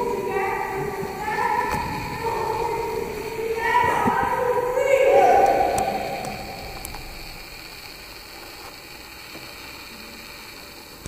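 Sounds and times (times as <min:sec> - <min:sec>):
high wailing melody: 0:00.0 - 0:07.4.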